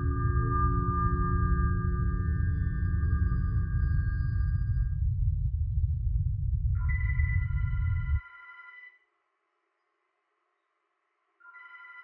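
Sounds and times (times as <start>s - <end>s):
high ringing tone: 0.0s - 5.0s, 6.8s - 9.0s
deep low drone: 0.0s - 8.2s.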